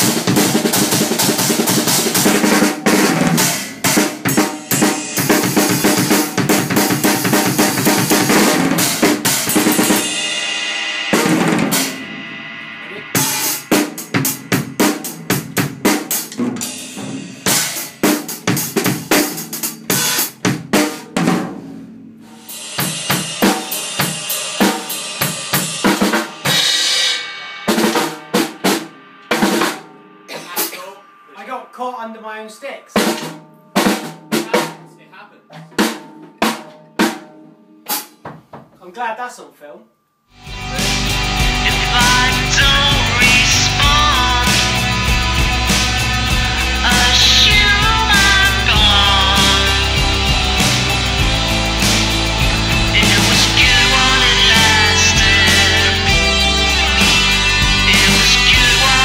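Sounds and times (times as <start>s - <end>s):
crash and ride cymbals: 0.0s - 31.8s, 40.4s - 59.0s
bass drum: 12.8s - 17.7s, 40.4s - 59.0s.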